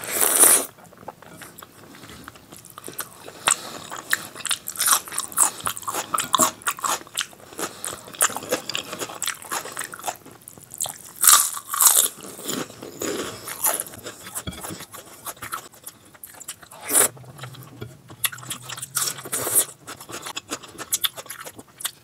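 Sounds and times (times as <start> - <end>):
person chewing food: 0.2 - 22.0.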